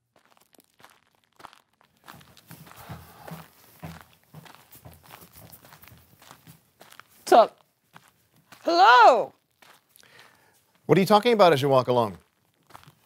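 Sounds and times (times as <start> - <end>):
faint footsteps walking: 0.0 - 13.0.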